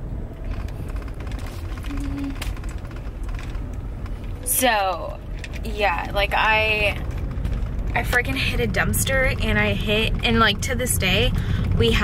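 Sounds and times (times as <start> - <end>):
car engine rumble inside cabin: 0.0 - 12.0
brief low tone: 1.8 - 2.4.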